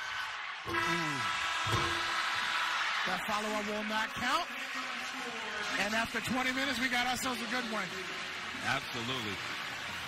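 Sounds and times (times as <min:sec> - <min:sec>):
crowd noise: 0:00.0 - 0:10.0
arena horn: 0:00.7 - 0:02.2.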